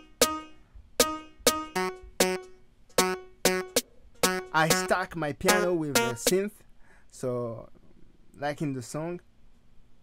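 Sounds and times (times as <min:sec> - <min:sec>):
plucky synth chord stabs: 0:00.0 - 0:06.4.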